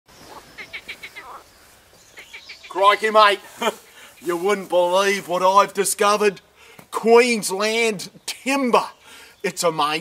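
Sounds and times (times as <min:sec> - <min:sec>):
lower sliding bird call: 0:00.1 - 0:04.4
bird chirping: 0:00.1 - 0:04.5
faint outdoor background: 0:00.1 - 0:10.0.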